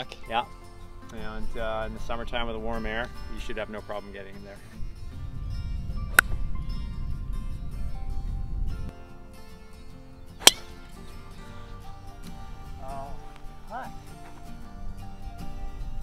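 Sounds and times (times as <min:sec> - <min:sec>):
background music: 0:00.0 - 0:16.0
low rumble: 0:04.8 - 0:08.9
golf club striking ball: 0:06.0 - 0:06.5, 0:10.4 - 0:11.0.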